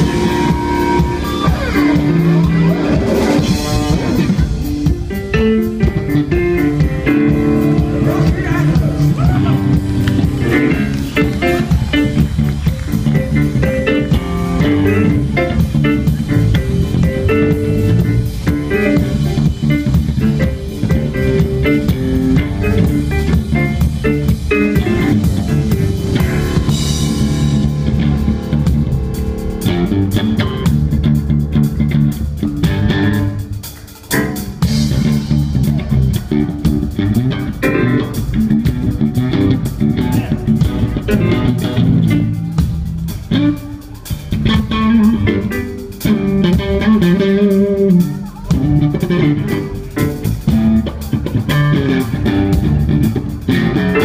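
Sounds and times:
live blues band playing: 0.0 - 54.0.

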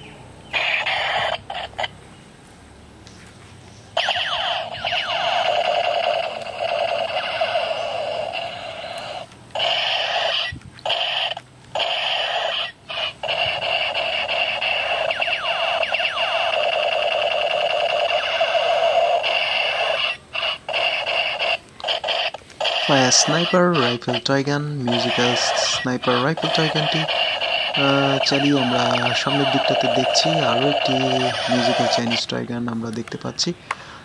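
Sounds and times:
toy gun electronic shooting sound: 0.6 - 1.9, 4.0 - 32.3.

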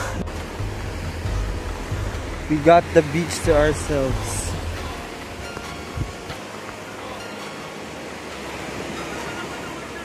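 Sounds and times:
small waves breaking on beach: 0.0 - 10.0.

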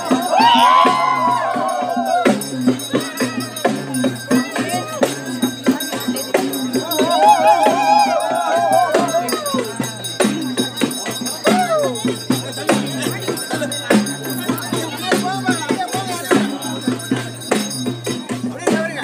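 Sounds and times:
crowd: 0.0 - 19.0
festival drumming: 0.0 - 19.0
rattling percussion: 0.0 - 19.0.

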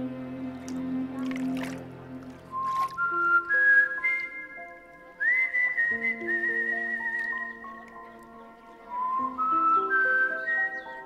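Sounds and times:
sustained low chords: 0.0 - 2.9
whistle-like melody: 2.5 - 8.2, 8.8 - 11.0.

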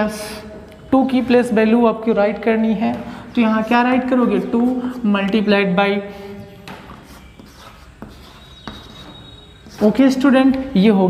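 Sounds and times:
chalk scratching on chalkboard: 3.6 - 5.5, 6.1 - 10.3
chalk tapping on board: 6.6 - 10.0.

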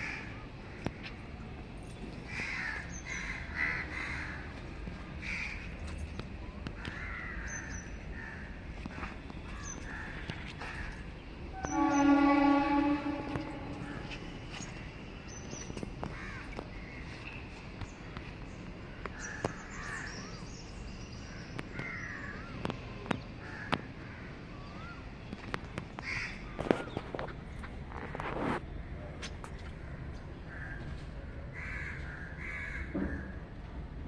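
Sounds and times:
crows cawing: 2.3 - 4.5, 5.2 - 5.6, 6.8 - 8.5, 16.1 - 16.5, 26.0 - 26.5, 31.6 - 33.0
horn steady note: 11.5 - 14.4.

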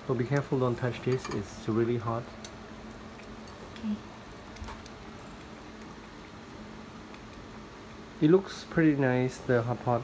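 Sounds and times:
broth simmering with bubbling hiss: 0.0 - 10.0.

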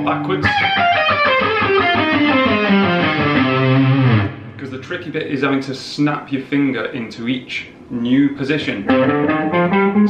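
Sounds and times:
electric guitar descending run: 0.4 - 4.6.

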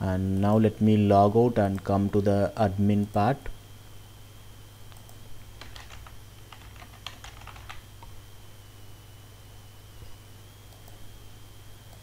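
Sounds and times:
steady low hum: 0.0 - 12.0
computer keyboard typing: 4.9 - 8.1.

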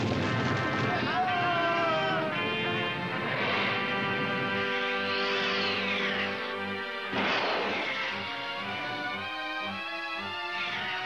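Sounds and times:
film soundtrack music: 0.0 - 11.0
sudden crash: 7.1 - 8.3.

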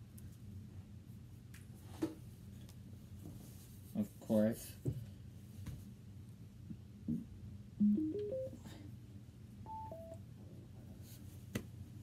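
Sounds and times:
two-note electronic beep: 7.8 - 8.6.

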